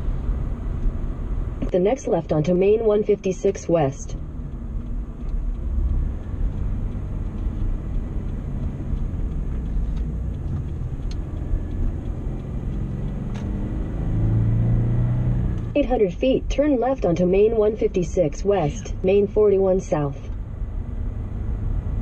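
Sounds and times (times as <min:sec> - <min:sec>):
car engine and road noise: 0:00.0 - 0:22.0.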